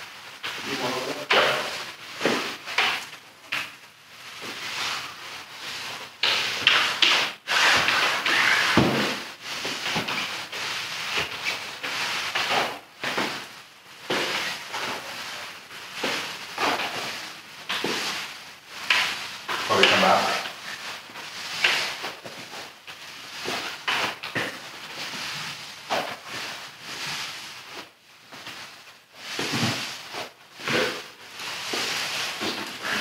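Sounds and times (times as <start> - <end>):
mop swishing over wet concrete: 0.0 - 33.0.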